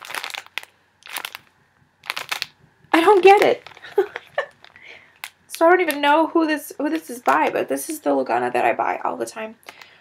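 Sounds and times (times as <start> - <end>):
plastic wrapping crinkling: 0.0 - 8.3, 9.6 - 10.0.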